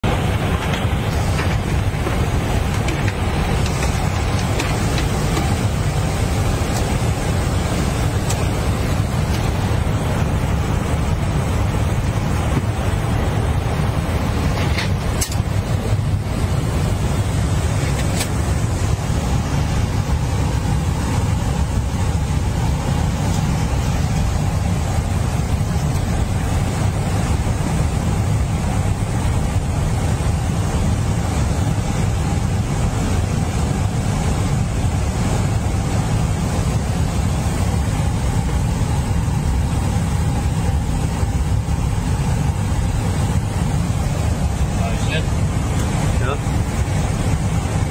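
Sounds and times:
jet cockpit rumble: 0.0 - 47.9.

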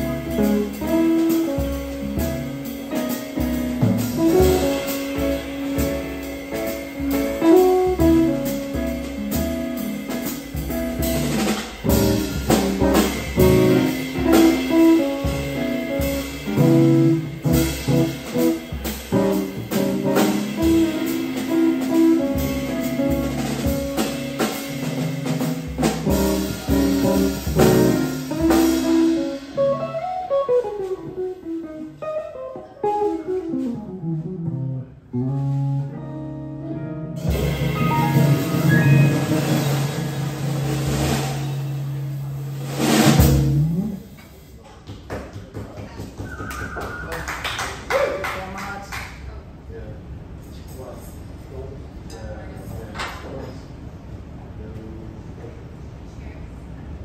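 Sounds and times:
drum kit on cymbals: 0.0 - 31.6, 37.2 - 44.6.

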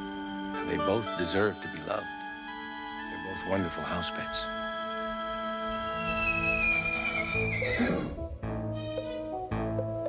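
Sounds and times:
background music: 0.0 - 10.0
horse whinnying: 5.7 - 9.4.

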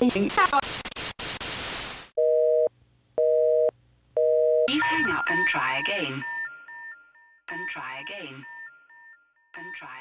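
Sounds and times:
white-noise static burst: 0.2 - 2.1.

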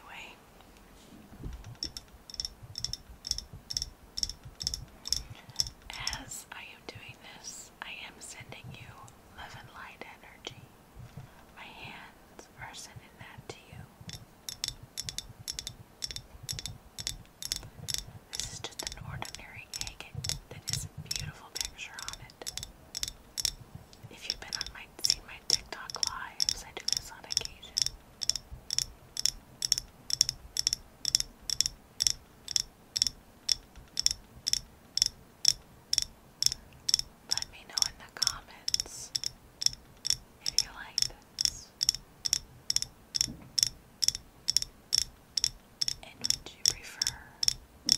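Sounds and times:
soft whispering: 0.0 - 1.2, 5.2 - 10.8, 11.4 - 14.1, 18.3 - 22.6, 24.0 - 27.8, 37.3 - 39.1, 40.4 - 41.8, 46.0 - 47.4
fingernails tapping on stone: 1.7 - 6.2, 14.1 - 23.6, 24.4 - 37.0, 37.8 - 47.9.

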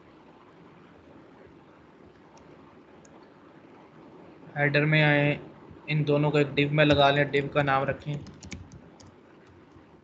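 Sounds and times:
computer keyboard typing: 8.0 - 9.8.

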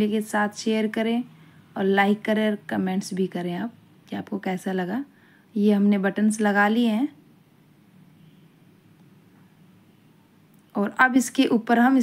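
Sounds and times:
woman speaking: 0.0 - 7.2, 10.7 - 12.0
faint low hum: 0.0 - 12.0.

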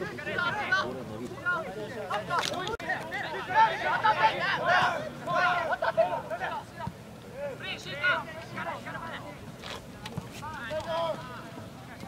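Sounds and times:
voices shouting: 0.0 - 9.4.

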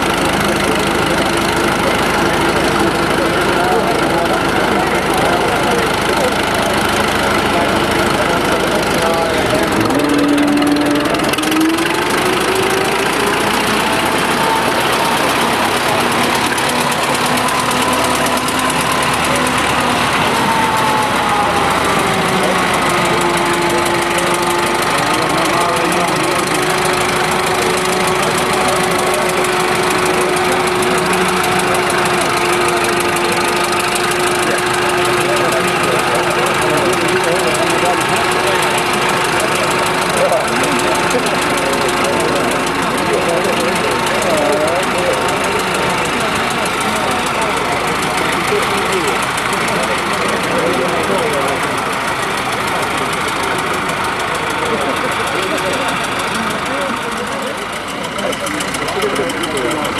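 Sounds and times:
motor plough engine under load: 0.0 - 59.9
voices in background: 0.0 - 59.9.

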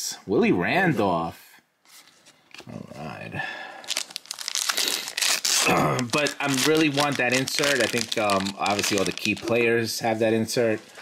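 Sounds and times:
foil wrapper crinkling and tearing: 3.8 - 9.6.

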